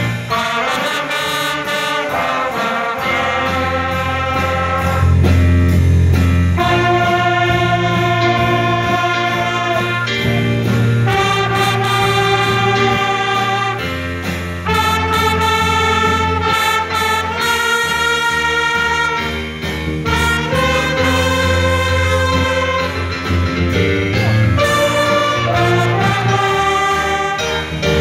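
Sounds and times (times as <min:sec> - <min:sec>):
band with trumpets playing: 0:00.0 - 0:28.0.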